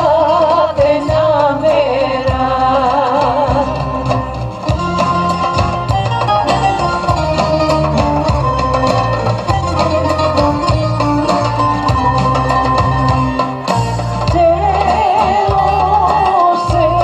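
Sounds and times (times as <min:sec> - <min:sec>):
folk music over loudspeaker: 0:00.0 - 0:17.0.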